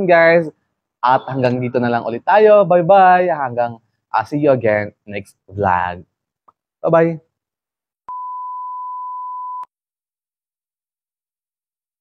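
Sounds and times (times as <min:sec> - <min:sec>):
steady reference beep: 0:08.1 - 0:09.7.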